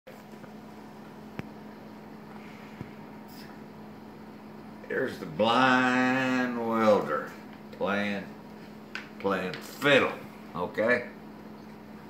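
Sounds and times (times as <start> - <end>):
appliance room hum: 0.1 - 12.0.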